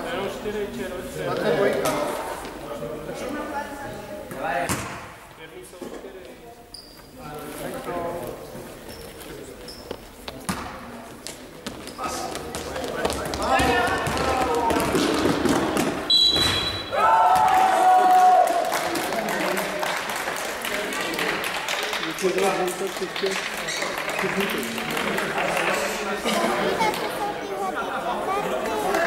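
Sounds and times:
basketball bouncing on court: 0:12.4 - 0:16.8
people shouting: 0:16.9 - 0:18.5.

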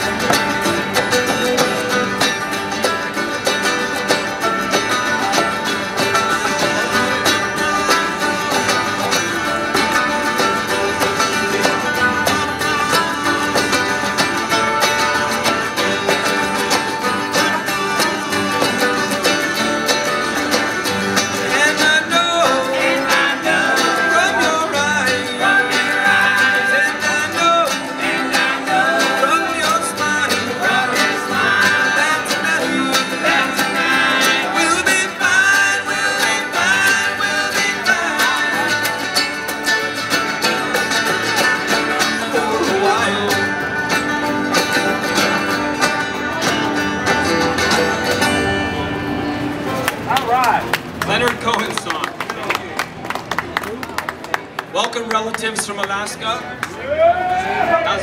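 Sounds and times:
voices singing: 0:00.0 - 0:46.0
picked banjo: 0:00.0 - 0:56.8
strummed acoustic guitars: 0:00.0 - 0:58.0.

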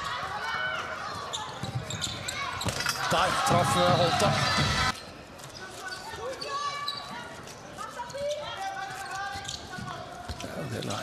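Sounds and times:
voices in sports hall: 0:00.0 - 0:11.0
ball bouncing on indoor court: 0:01.2 - 0:05.0.

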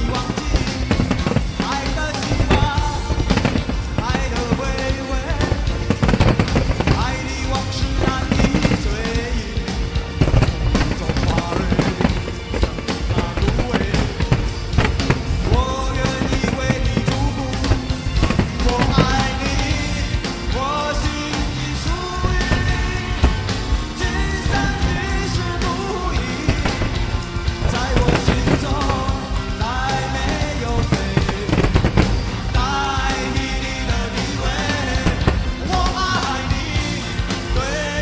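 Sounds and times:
fireworks banging: 0:00.0 - 0:38.0
loud music: 0:00.0 - 0:38.0.

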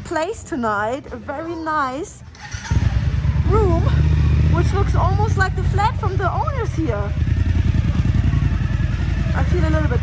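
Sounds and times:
motorcycle engine rumbling at low revs: 0:02.3 - 0:10.0.

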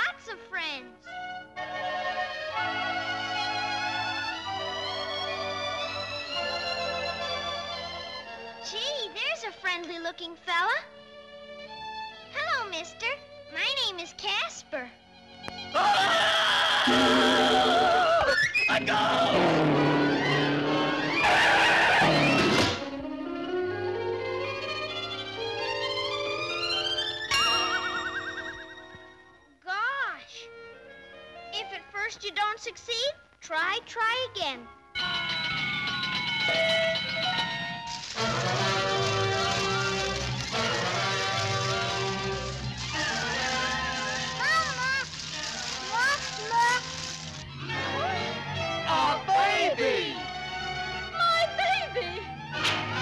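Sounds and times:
background music: 0:00.0 - 0:53.0
cartoon baby wailing: 0:15.8 - 0:18.3
cartoon taxi speeding off: 0:19.2 - 0:22.8
orchestral music: 0:35.0 - 0:53.0.

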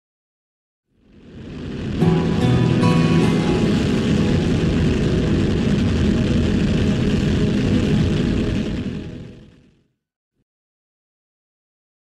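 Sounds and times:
loud engine-like rumble: 0:01.0 - 0:09.7
music: 0:01.9 - 0:09.6.

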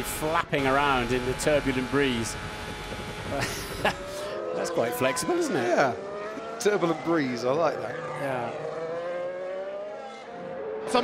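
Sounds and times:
racing car engines accelerating: 0:00.0 - 0:11.0.

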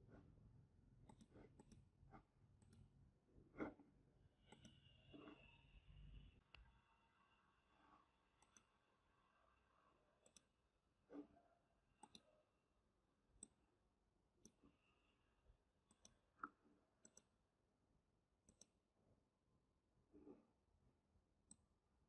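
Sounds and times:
mouse and keyboard clicks: 0:01.0 - 0:01.8, 0:04.5 - 0:05.0, 0:08.4 - 0:08.7, 0:10.2 - 0:10.5, 0:12.0 - 0:12.3, 0:15.9 - 0:17.3.

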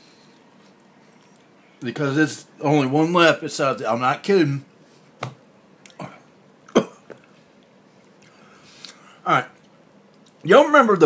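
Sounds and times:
man coughing: 0:06.0 - 0:07.2.

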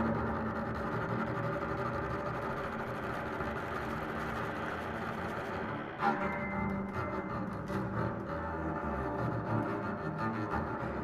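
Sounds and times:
double bass: 0:00.0 - 0:11.0
chamber ensemble sustained drone: 0:05.5 - 0:10.0.

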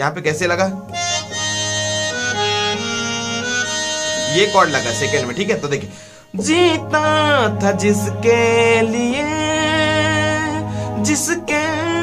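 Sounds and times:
electronic keyboard harmonium sound: 0:00.4 - 0:12.0.

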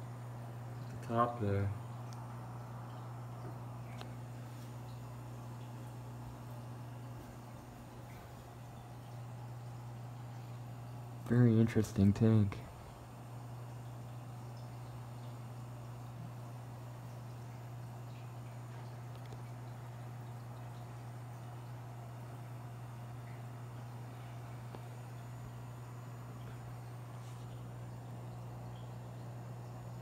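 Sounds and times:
aquarium filter humming: 0:00.0 - 0:30.0
faint water noise: 0:00.0 - 0:30.0.

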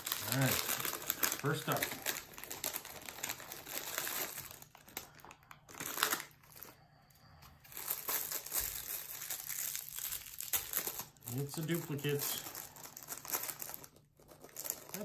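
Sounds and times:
plastic packet crinkling: 0:00.0 - 0:06.8, 0:07.7 - 0:15.0.

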